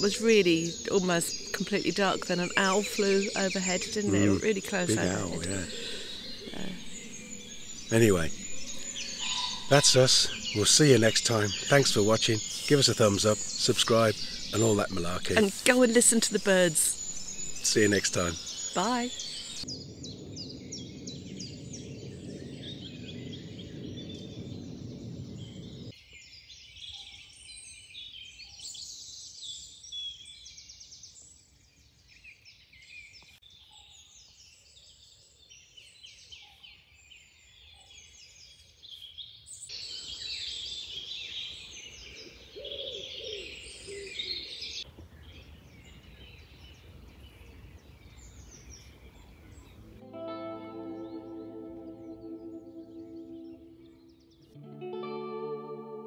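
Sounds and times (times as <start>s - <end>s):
songbirds singing: 0.0s - 50.0s, 50.8s - 54.6s
low steady rumble: 19.2s - 25.9s.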